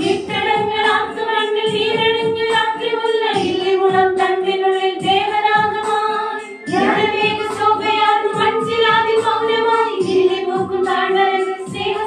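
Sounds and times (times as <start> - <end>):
women singing a carol: 0.0 - 12.0
steady beat: 6.7 - 9.4.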